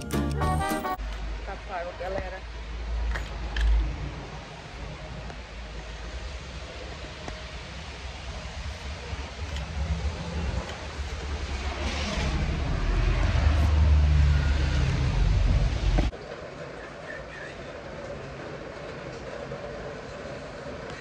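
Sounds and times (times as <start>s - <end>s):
low rumbling street noise: 0.0s - 21.0s.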